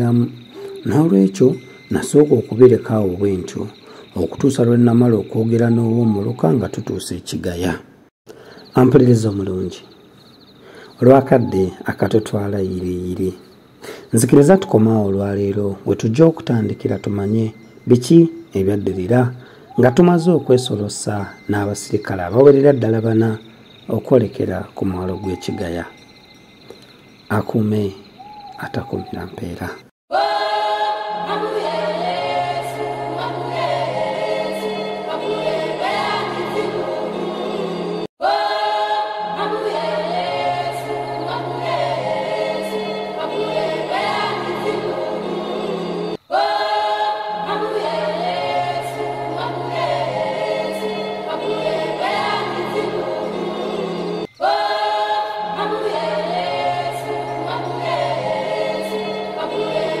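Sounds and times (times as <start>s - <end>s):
choir singing: 0.0s - 6.9s, 11.0s - 13.4s, 14.2s - 26.0s, 30.1s - 60.0s.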